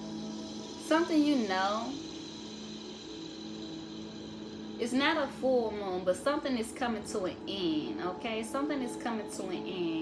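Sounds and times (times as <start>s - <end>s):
low hum of held tones: 0.0s - 10.0s.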